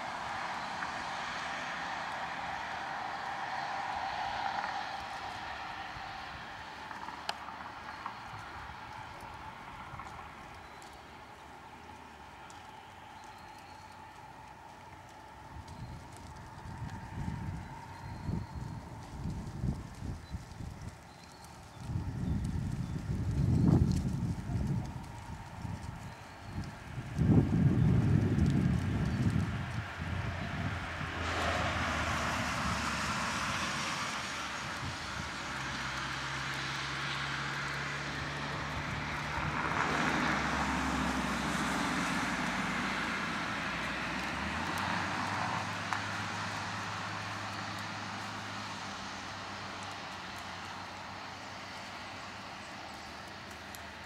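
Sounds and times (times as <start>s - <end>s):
distant engine droning: 0.0s - 54.0s.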